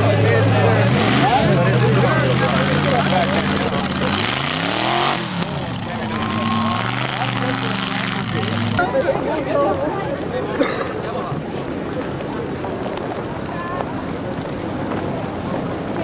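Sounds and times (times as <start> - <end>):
vehicle engine revving: 0.0 - 9.0
crowd chatter: 0.0 - 16.0.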